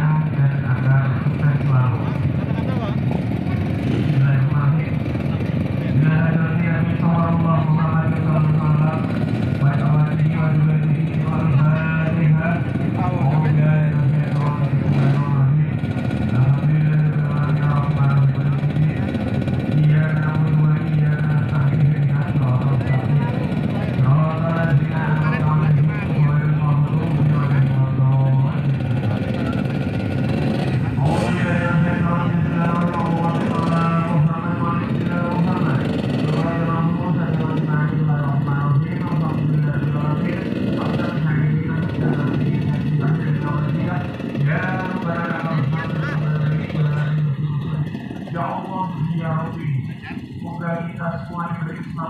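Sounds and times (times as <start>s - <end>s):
crowd voices: 0.0s - 52.0s
motorcycles idling: 0.0s - 52.0s.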